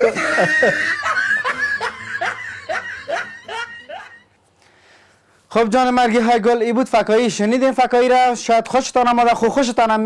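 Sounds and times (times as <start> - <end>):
person laughing: 0.0 - 4.3.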